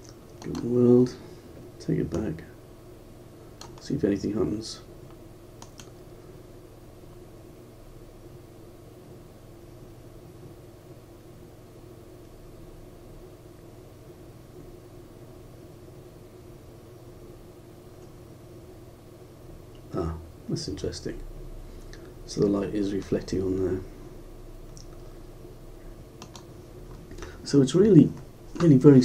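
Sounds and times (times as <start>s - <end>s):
low background hum: 0.0s - 29.0s.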